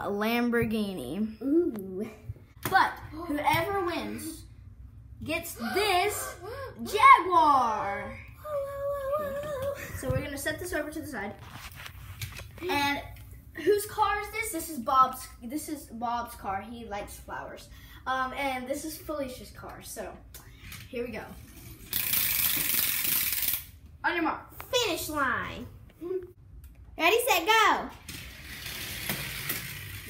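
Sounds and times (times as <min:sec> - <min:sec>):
child humming: 0:08.4 - 0:10.0.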